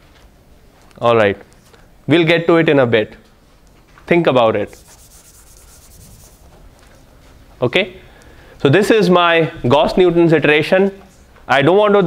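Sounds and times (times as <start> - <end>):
chalk scratching on a blackboard: 4.7 - 6.6.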